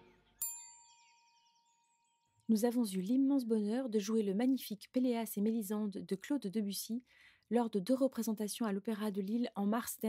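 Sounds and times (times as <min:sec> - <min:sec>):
bell-like chime: 0:00.4 - 0:02.5.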